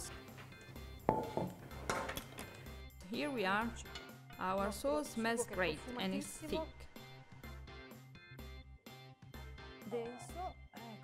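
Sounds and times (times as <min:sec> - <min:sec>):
background music: 0:00.0 - 0:11.0
kitchenware clinking: 0:01.1 - 0:02.7, 0:03.8 - 0:04.7.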